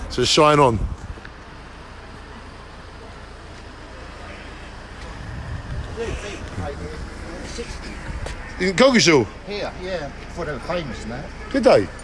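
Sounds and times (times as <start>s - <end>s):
car engine running: 0.0s - 12.0s
low traffic rumble: 0.0s - 12.0s.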